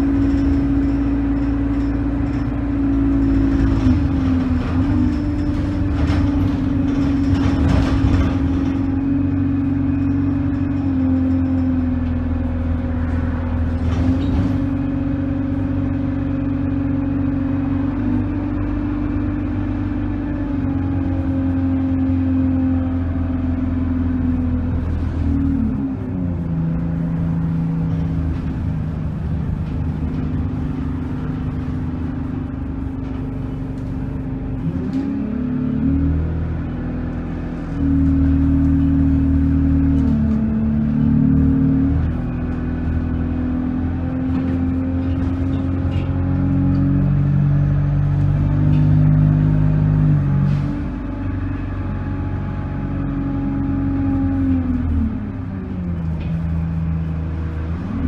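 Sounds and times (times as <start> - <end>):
bus engine hum: 0.0 - 58.0.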